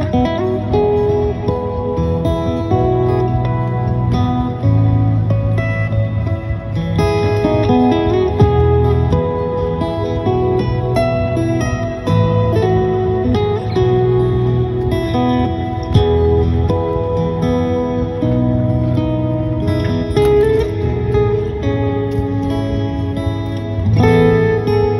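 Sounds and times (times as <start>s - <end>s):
acoustic guitar melody: 0.0s - 24.9s.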